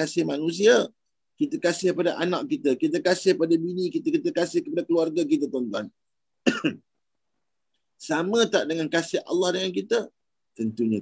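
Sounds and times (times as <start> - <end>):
man clearing throat: 6.4 - 6.9.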